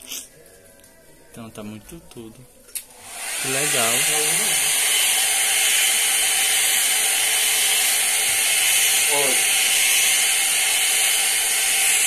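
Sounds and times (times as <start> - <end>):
hot-air brush motor blowing: 3.0 - 12.0.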